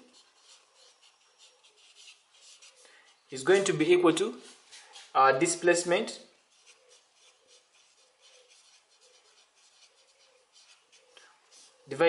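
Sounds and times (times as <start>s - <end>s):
marker pen scratching on paper: 0.0s - 12.0s.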